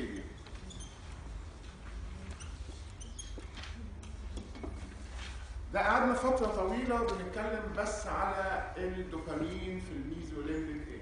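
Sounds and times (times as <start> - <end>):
marker squeaking on a whiteboard: 0.0 - 5.1.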